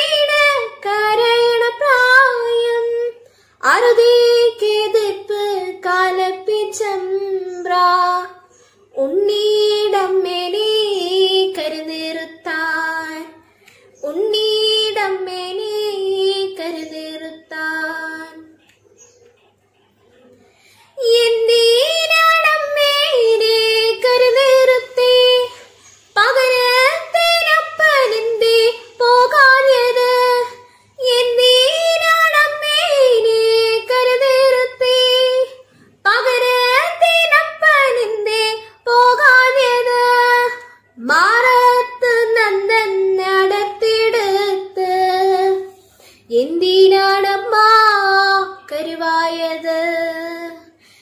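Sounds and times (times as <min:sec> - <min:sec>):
woman singing unaccompanied: 0:00.0 - 0:13.4, 0:14.0 - 0:18.6, 0:21.0 - 0:50.8.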